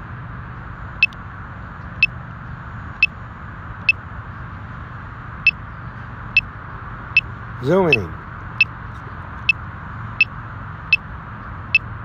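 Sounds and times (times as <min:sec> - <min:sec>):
short high-pitched beeps: 0:07.9 - 0:08.1.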